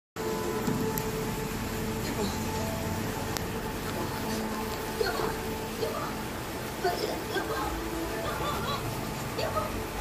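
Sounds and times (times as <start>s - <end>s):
television drama soundtrack: 0.2s - 10.0s.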